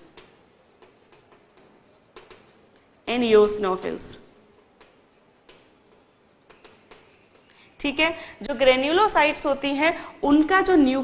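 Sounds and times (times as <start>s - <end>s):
chalk tapping on blackboard: 0.0s - 7.6s.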